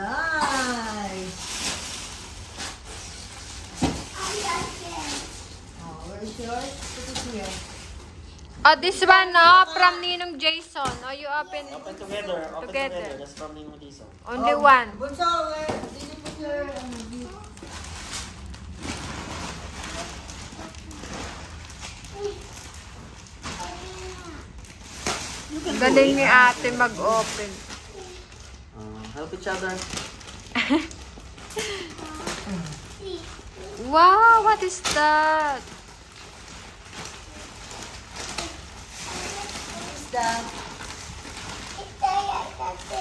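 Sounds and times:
foil gift wrap crackling: 0:00.0 - 0:43.0
faint children's voices: 0:04.0 - 0:05.4.

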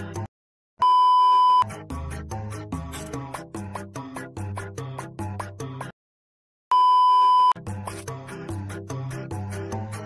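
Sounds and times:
high test-tone beep: 0:06.7 - 0:07.6
background music with steady beat: 0:07.6 - 0:10.0.

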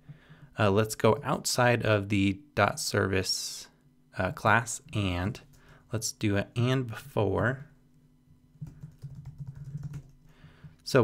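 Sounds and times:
keyboard typing: 0:08.6 - 0:10.3.

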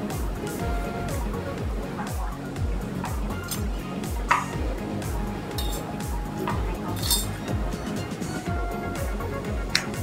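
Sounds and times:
background music with steady beat: 0:00.0 - 0:10.0
aluminium can pieces clinking: 0:05.6 - 0:05.9, 0:06.5 - 0:07.4.

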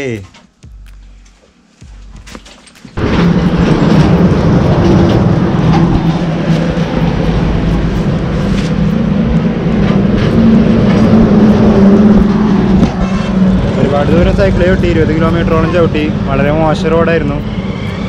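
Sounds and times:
tractor engine idling: 0:01.9 - 0:18.0.

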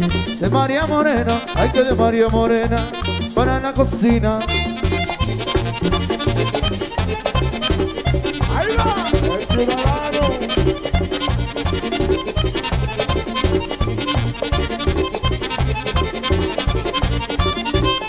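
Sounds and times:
button accordion band music: 0:00.0 - 0:18.0
person calling out: 0:08.4 - 0:10.7.

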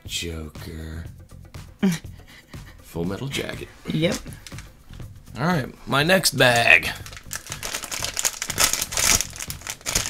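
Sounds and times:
foil bag crinkling: 0:06.5 - 0:10.0.

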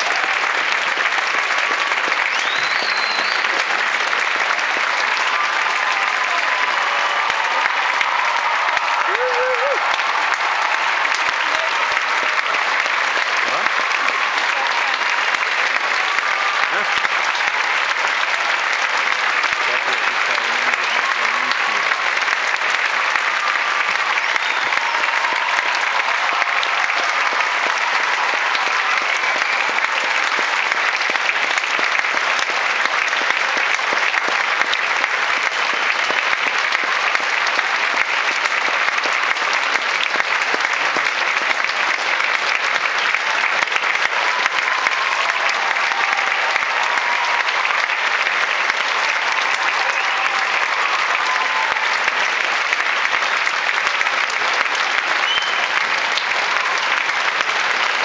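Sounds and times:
audience applauding: 0:00.0 - 0:58.0.

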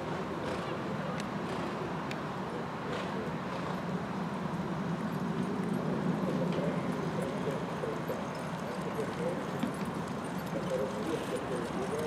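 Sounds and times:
outdoor ambience: 0:00.0 - 0:12.0
horses trotting on grass: 0:04.6 - 0:12.0.

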